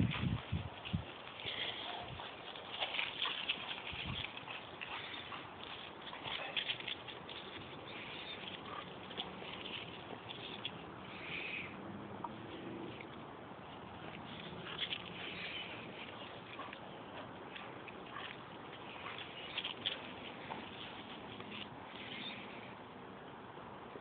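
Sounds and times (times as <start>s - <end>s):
dogs' paws trampling dry leaves: 0.0s - 11.7s, 12.4s - 22.7s.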